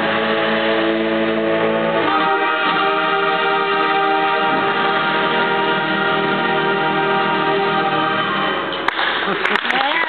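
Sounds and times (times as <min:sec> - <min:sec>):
concert band sustained chord: 0:00.0 - 0:08.9.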